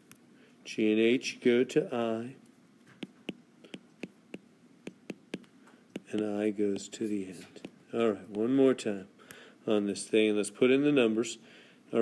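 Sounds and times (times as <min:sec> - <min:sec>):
stylus tapping on glass screen: 0:03.0 - 0:06.9.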